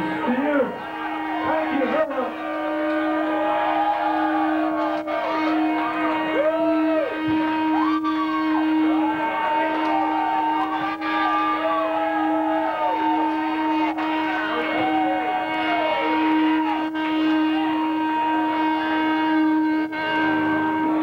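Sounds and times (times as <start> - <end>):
electric guitar feedback: 0.0 - 21.0.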